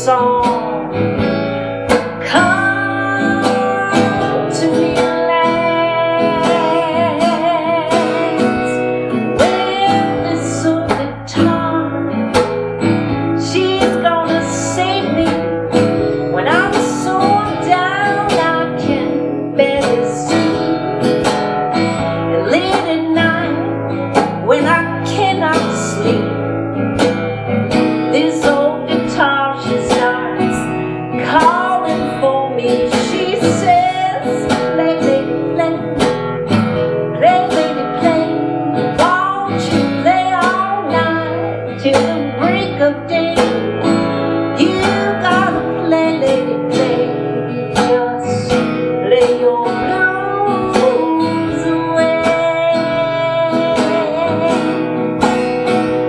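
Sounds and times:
acoustic guitar strumming: 0:00.0 - 0:56.0
woman singing: 0:00.0 - 0:56.0.

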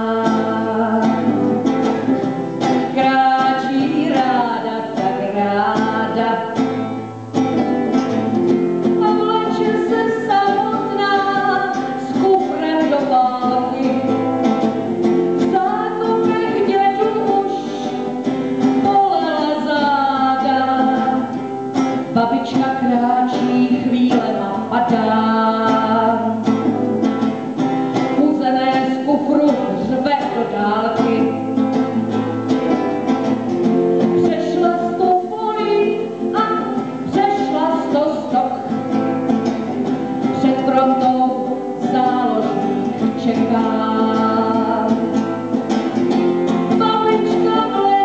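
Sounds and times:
acoustic guitar strumming: 0:00.0 - 0:48.0
woman singing: 0:00.0 - 0:48.0.

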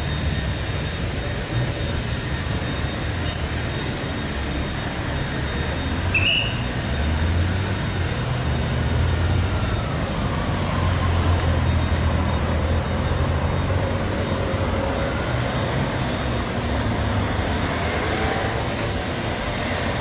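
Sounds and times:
vehicle engines passing: 0:00.0 - 0:20.0.

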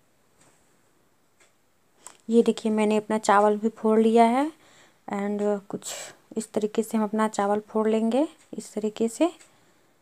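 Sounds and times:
faint ticking: 0:00.0 - 0:10.0.

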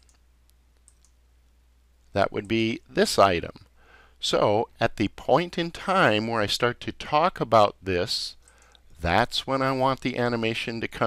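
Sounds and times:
faint low hum: 0:00.0 - 0:11.0
computer mouse clicks: 0:00.8 - 0:01.2.

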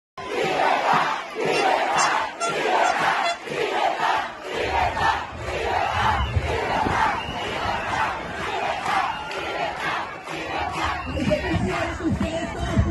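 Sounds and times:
huge crowd chanting: 0:00.2 - 0:12.9.

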